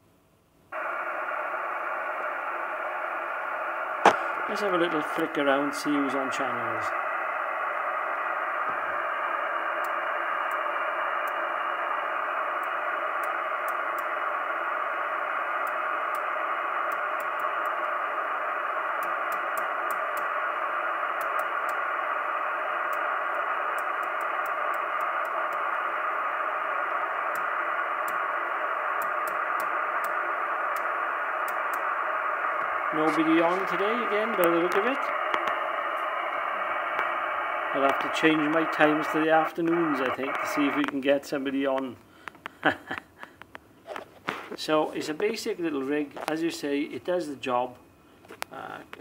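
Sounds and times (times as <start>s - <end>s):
radio receiver hiss: 0.7s - 49.0s.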